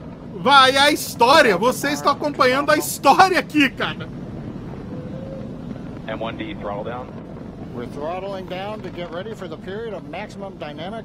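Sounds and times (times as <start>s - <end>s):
rocket engines rumbling: 0.0s - 11.0s.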